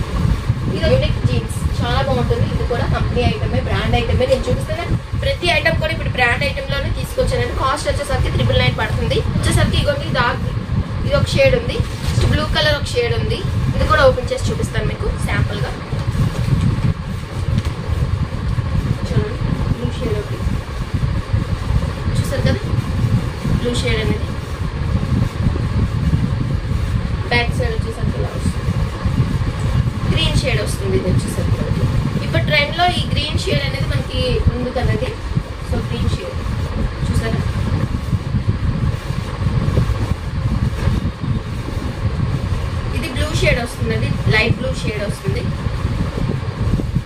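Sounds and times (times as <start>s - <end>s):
low background rumble: 0.0s - 47.0s.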